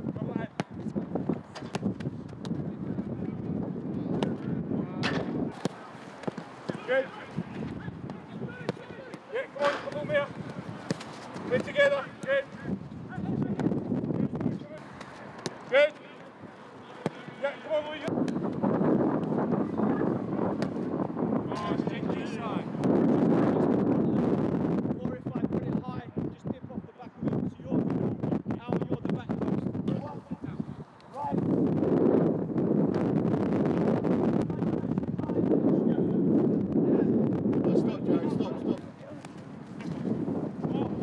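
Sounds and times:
wind rumbling on microphone: 0:00.0 - 0:05.6, 0:06.9 - 0:09.0, 0:09.9 - 0:14.8, 0:17.7 - 0:41.0
football being kicked: 0:00.5 - 0:02.6, 0:04.1 - 0:04.4, 0:07.6 - 0:12.4, 0:17.0 - 0:17.4, 0:18.2 - 0:19.4, 0:20.5 - 0:20.9.

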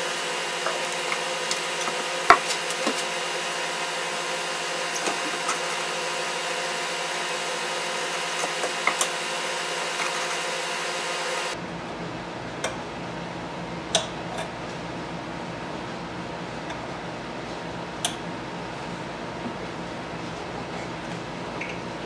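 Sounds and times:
background hiss and hum: 0:00.0 - 0:22.0.

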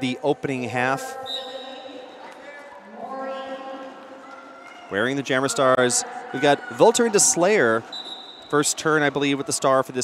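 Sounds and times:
background voices in a hall: 0:00.0 - 0:10.0
whistle blast: 0:01.2 - 0:02.0, 0:07.9 - 0:08.6.

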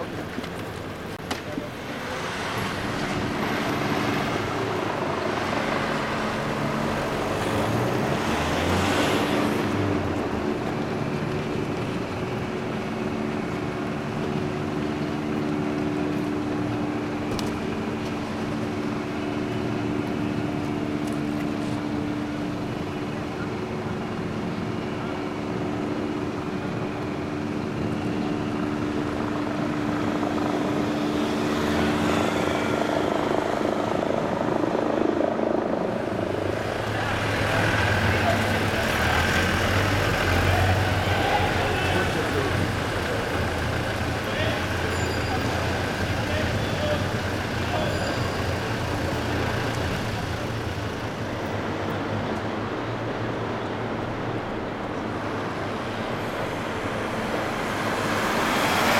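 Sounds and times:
vans driving past: 0:00.0 - 0:34.5, 0:35.7 - 0:58.9
vehicle engine drone: 0:00.0 - 0:58.9.

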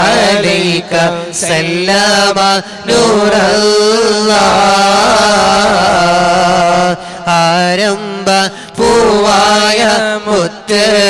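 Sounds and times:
men singing devotional chant: 0:00.0 - 0:11.0.

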